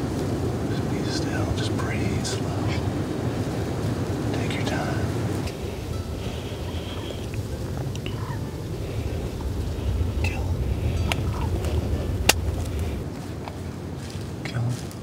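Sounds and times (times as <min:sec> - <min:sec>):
steady low rumble: 0:00.0 - 0:15.0
faint high-pitched calls: 0:05.5 - 0:11.6.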